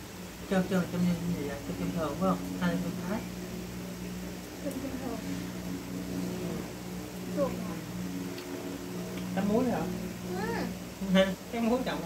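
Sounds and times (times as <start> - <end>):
low hum of held tones: 0.0 - 12.0.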